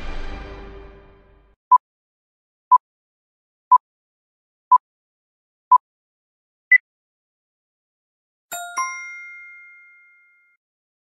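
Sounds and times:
two-note chime: 8.5s - 10.6s.

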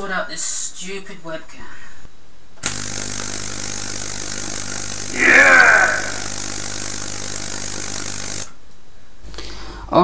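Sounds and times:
low mains hum: 0.0s - 10.0s
tesla coil buzzing hiss: 2.6s - 8.6s.

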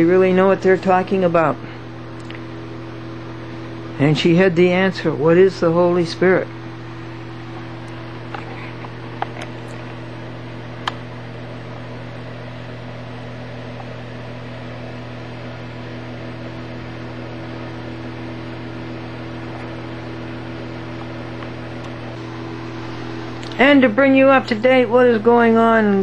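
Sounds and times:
electrical hum: 0.0s - 26.0s.

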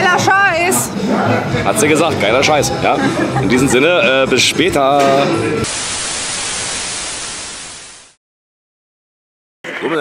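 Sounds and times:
white noise static hiss: 5.6s - 8.2s.

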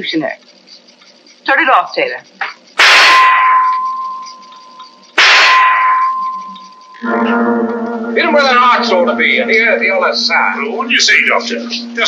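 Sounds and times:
metal target clanging: 2.8s - 7.1s.

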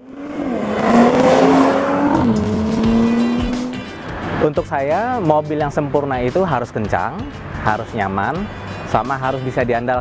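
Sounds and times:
car engine rushing: 0.0s - 4.5s
road noise: 0.0s - 9.5s.

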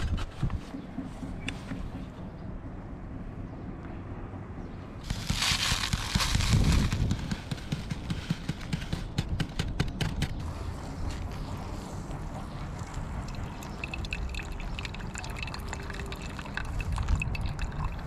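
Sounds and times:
paper bag rustling: 5.0s - 8.0s.

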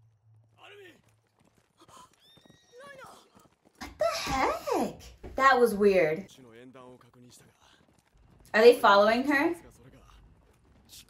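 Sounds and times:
woman speaking loudly: 3.8s - 6.3s, 8.6s - 9.6s.

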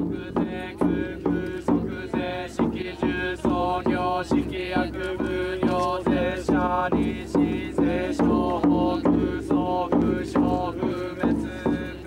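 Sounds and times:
priests chanting in unison: 0.0s - 12.0s
sharp rhythmic knock: 0.0s - 12.0s.

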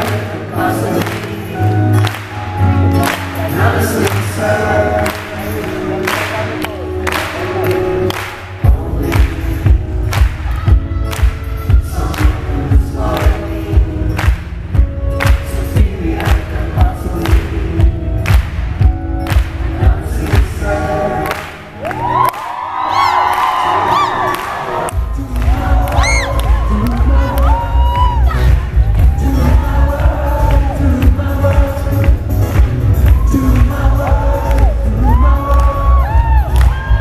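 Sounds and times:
crowd cheering and whistling: 21.8s - 31.0s, 32.9s - 37.0s.

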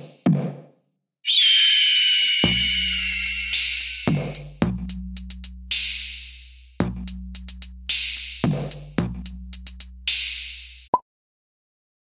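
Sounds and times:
harsh high-pitched screech: 1.3s - 4.4s
electronic beat: 2.4s - 5.1s
deep bass hit: 2.5s - 4.9s.

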